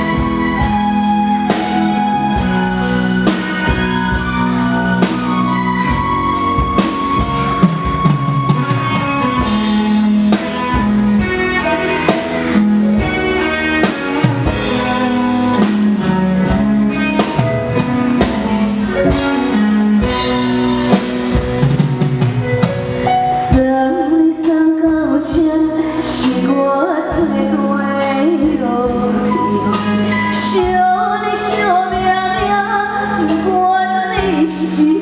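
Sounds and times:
steady drum beat: 0:00.0 - 0:23.9
live band playing pop ballad: 0:00.0 - 0:35.0
woman singing: 0:23.0 - 0:35.0.

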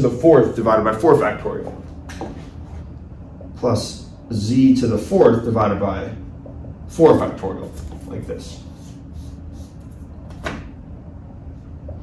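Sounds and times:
eraser wiping whiteboard: 0:07.6 - 0:10.2.

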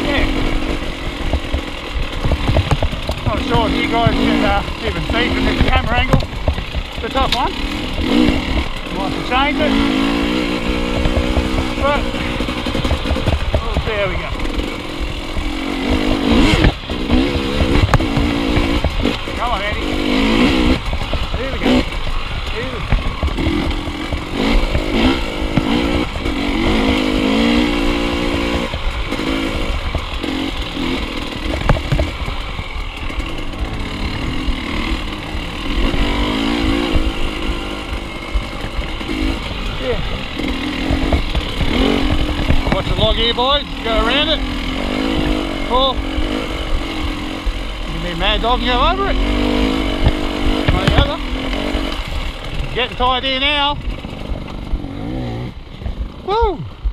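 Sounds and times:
dirt bike engine at low revs: 0:00.0 - 0:56.9
bike knocking over bumps: 0:01.2 - 0:09.6, 0:10.8 - 0:15.6, 0:16.2 - 0:19.8, 0:20.5 - 0:27.7, 0:29.8 - 0:33.6, 0:38.6 - 0:43.3, 0:49.9 - 0:53.0.

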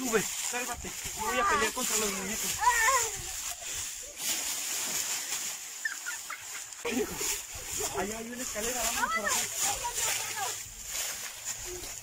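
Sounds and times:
straw rustling and crackling: 0:00.0 - 0:12.0.

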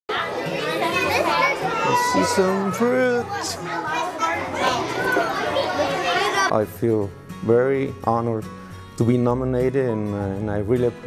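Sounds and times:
children talking and calling out: 0:00.1 - 0:06.5.

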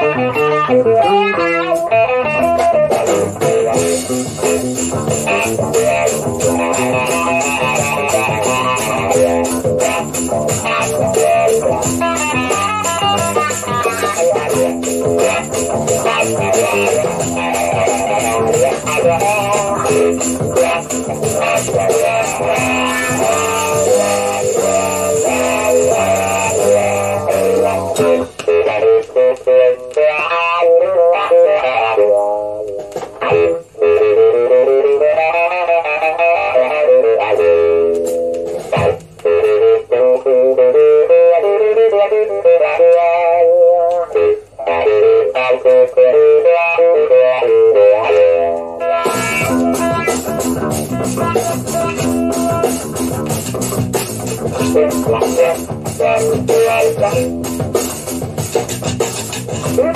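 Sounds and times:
bass and percussion: 0:00.0 - 0:29.4, 0:37.2 - 0:39.9, 0:48.4 - 0:59.9
electric guitar plucked melody: 0:00.0 - 0:59.9.

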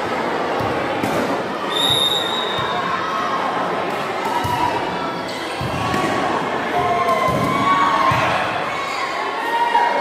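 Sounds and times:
crowd noise: 0:00.0 - 0:10.0.

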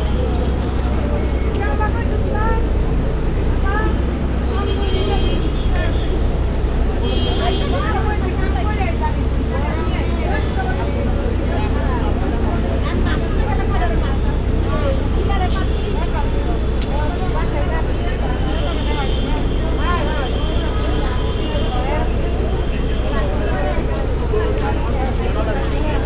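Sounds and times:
people talking at once: 0:00.0 - 0:26.0.

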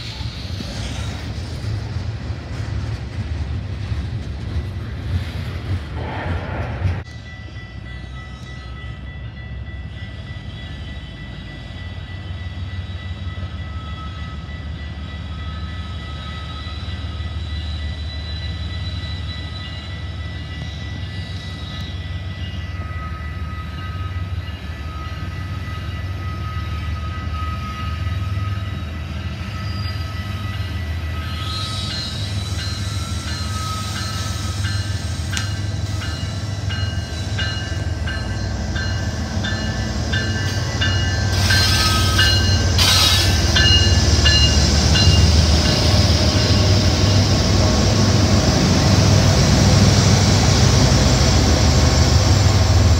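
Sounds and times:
diesel locomotive engine rumble: 0:00.0 - 0:52.9.

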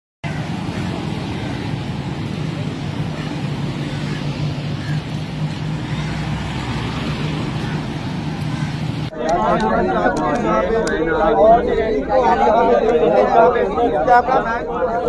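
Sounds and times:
vehicle engines and tyres on road: 0:00.2 - 0:15.0
constant low hum: 0:00.3 - 0:15.0.

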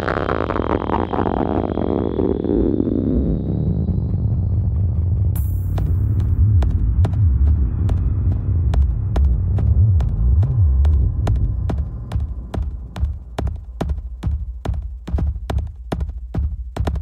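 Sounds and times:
throbbing sub-bass drone: 0:00.0 - 0:17.0.

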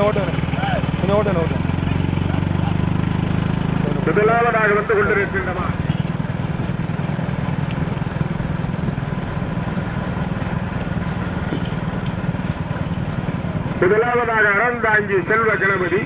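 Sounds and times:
road noise: 0:00.0 - 0:16.0
vehicle engine droning: 0:00.0 - 0:16.0.

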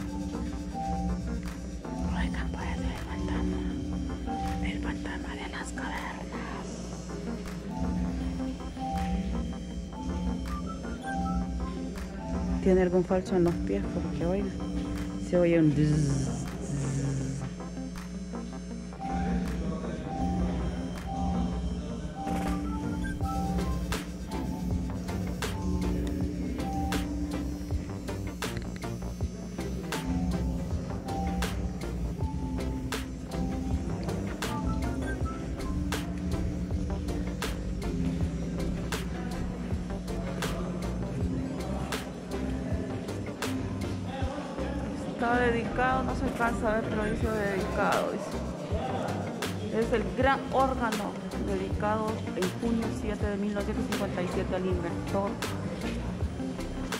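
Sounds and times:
deep low organ tones: 0:00.0 - 0:47.7.

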